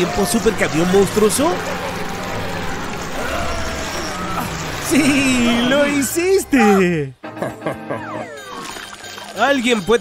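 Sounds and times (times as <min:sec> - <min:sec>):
wheels churning through mud: 0:00.0 - 0:06.8
monster truck engine rumbling: 0:00.0 - 0:07.2
wordless straining voices: 0:00.0 - 0:07.2.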